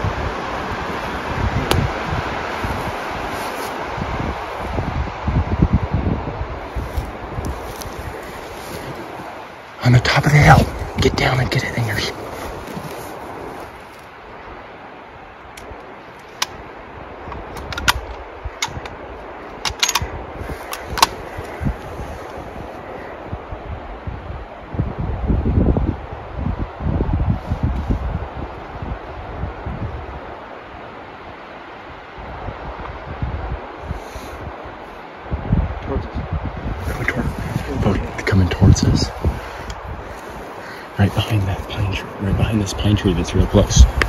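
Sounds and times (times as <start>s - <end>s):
rustle of clothing and grass: 0.0s - 44.0s
wind buffeting microphone: 0.0s - 44.0s
sharp clicks: 17.3s - 19.0s, 19.6s - 20.1s.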